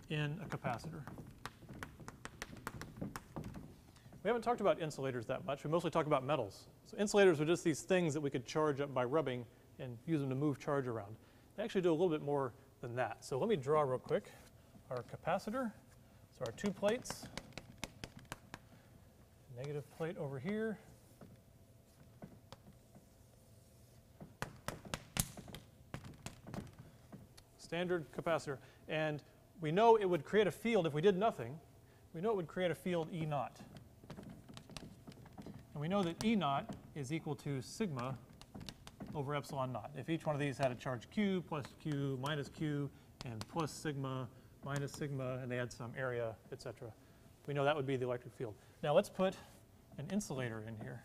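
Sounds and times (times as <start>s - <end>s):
chalk tapping on blackboard: 0.4s - 3.8s, 16.4s - 18.8s, 19.6s - 26.9s, 33.0s - 36.9s, 37.9s - 39.2s, 41.6s - 43.8s.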